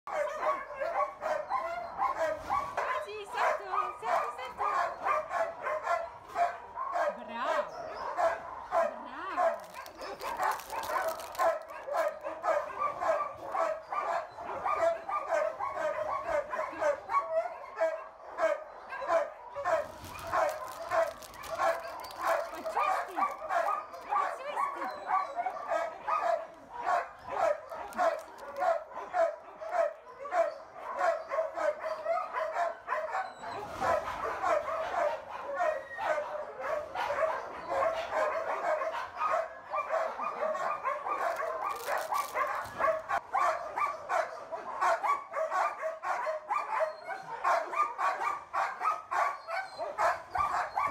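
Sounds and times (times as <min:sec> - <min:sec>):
dog barking: 0:00.1 - 0:50.9.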